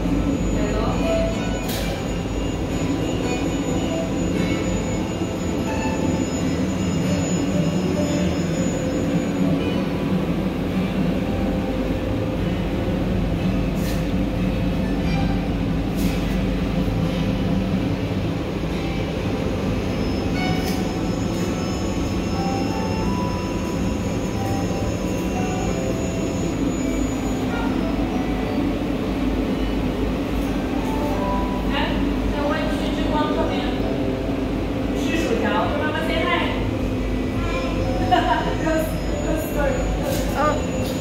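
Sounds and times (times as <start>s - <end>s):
ferris wheel mechanical hum: 0.0s - 41.0s.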